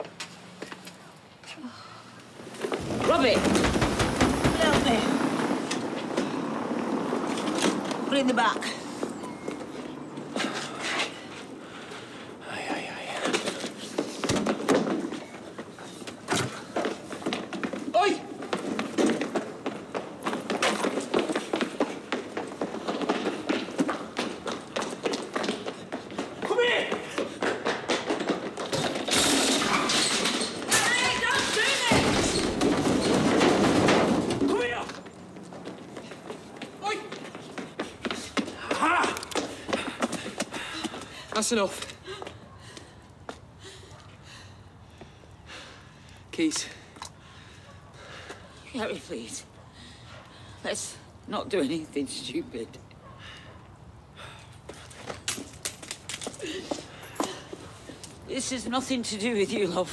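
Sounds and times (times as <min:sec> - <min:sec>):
street noise: 0:00.0 - 0:59.9
cardboard boxes knocked over: 0:02.7 - 0:05.3, 0:31.4 - 0:34.6
running footsteps: 0:13.2 - 0:44.3.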